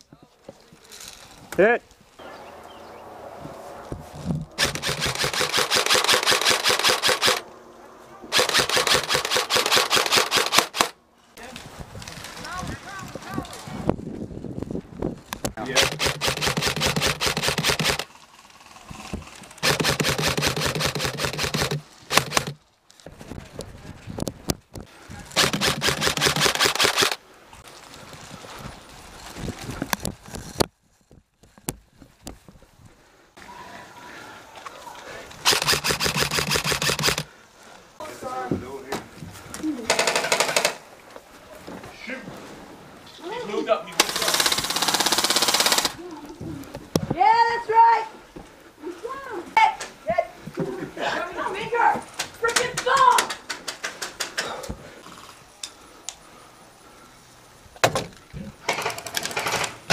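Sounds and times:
airsoft rifle full-auto bursts: 0:04.6 - 0:07.4, 0:08.3 - 0:11.0, 0:15.7 - 0:18.1, 0:19.6 - 0:22.6, 0:25.4 - 0:27.2, 0:35.4 - 0:37.3, 0:39.9 - 0:40.8, 0:44.0 - 0:46.0.

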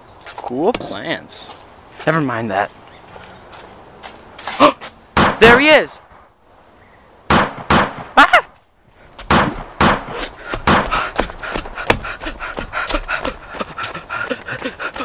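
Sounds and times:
running footsteps: 0:03.0 - 0:05.0, 0:09.9 - 0:15.0
pretend gunshot sounds: 0:05.2 - 0:05.7, 0:07.3 - 0:08.3, 0:09.3 - 0:11.0.

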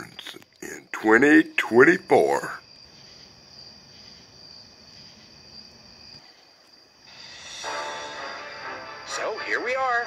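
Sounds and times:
low hiss: 0:00.0 - 0:10.0.

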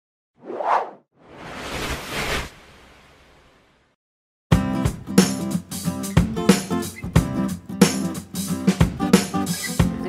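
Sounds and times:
whoosh sound effects: 0:00.4 - 0:03.6.

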